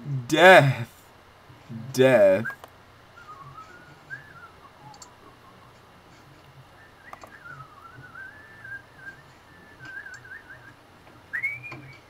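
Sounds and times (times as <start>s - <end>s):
person whistling a tune: 11.4s - 12.0s.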